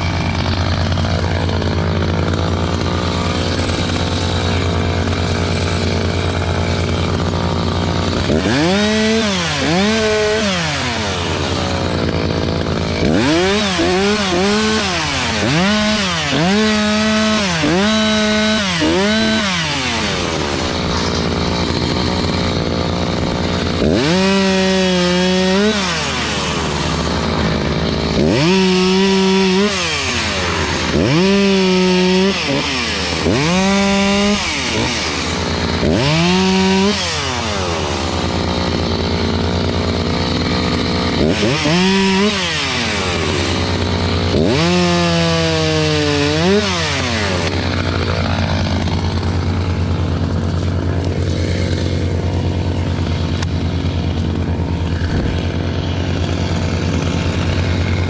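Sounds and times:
chainsaw idling and revving: 0.0 - 58.0.

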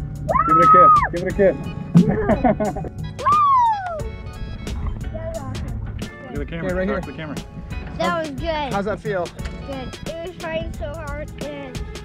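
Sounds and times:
background music with steady beat: 0.0 - 12.0
person cheering woo: 0.3 - 1.2, 3.2 - 4.1.

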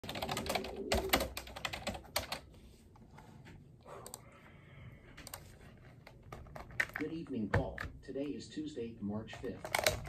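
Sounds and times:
typing on computer keyboard: 0.0 - 2.5, 5.2 - 7.9, 9.4 - 10.0.

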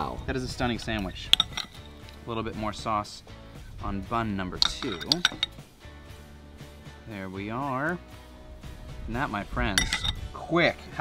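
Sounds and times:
soft background music: 0.0 - 11.0
spoon clinking on glass bowl: 0.9 - 2.0, 4.6 - 5.6, 9.8 - 10.3.

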